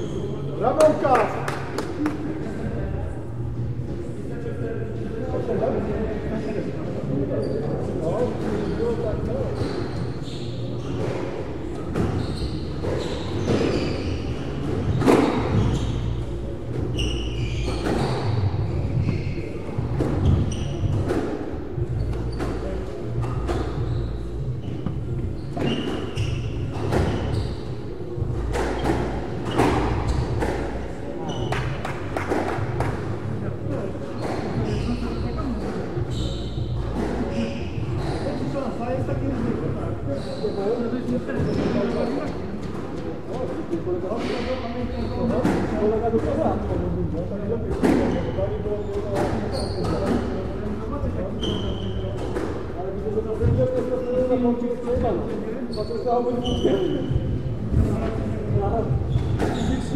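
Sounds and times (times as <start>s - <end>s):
shoes squeaking on wooden floor: 8.4s - 33.1s, 33.7s - 46.6s, 47.6s - 59.9s.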